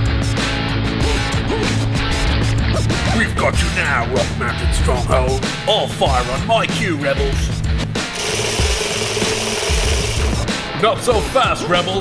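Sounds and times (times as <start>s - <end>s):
background music with low beat: 0.0s - 12.0s.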